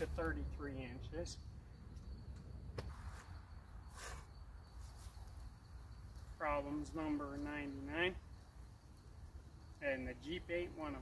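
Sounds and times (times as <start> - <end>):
high insect tone: 0.0 - 11.0
soft rustle: 2.9 - 6.4.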